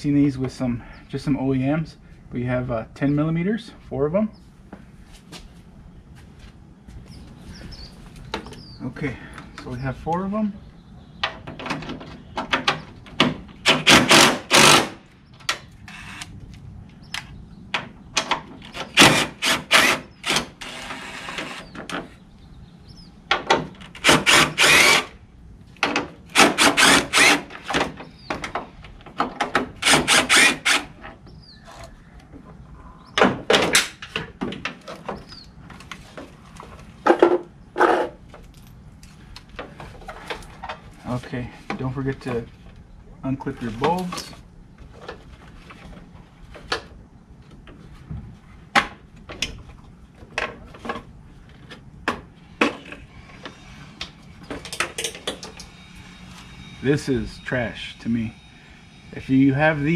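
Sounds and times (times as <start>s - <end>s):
impact driver hammering: 13.2s - 15.0s, 23.4s - 25.1s, 25.9s - 28.0s, 29.5s - 30.9s.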